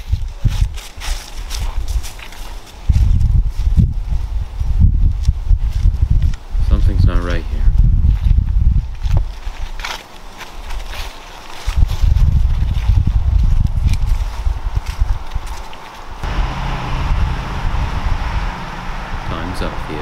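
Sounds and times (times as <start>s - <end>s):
footsteps crunching on dry leaves: 0.0s - 3.7s, 8.0s - 17.7s
wind buffeting microphone: 0.0s - 9.8s, 11.6s - 20.0s
steady low hum: 16.2s - 20.0s.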